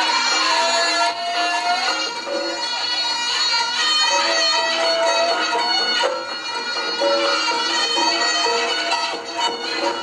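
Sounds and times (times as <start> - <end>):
gamelan accompaniment: 0.0 - 10.0.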